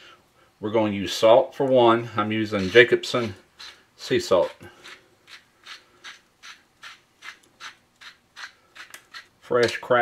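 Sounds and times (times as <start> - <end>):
salt grinder grinding: 2.4 - 9.5.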